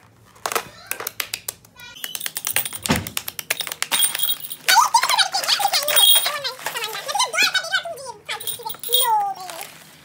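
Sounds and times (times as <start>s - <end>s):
child talking: 1.8s - 2.0s, 4.7s - 9.8s.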